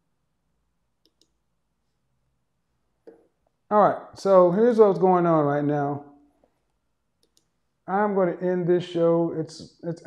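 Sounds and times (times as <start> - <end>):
man speaking: 3.7 - 6.1, 7.9 - 10.0
faint clicks: 6.4 - 7.5.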